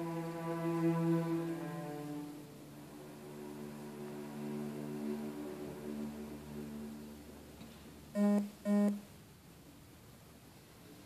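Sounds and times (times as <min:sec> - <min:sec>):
loud accented string notes: 0:00.0 - 0:07.6
string orchestra chord: 0:00.0 - 0:07.6.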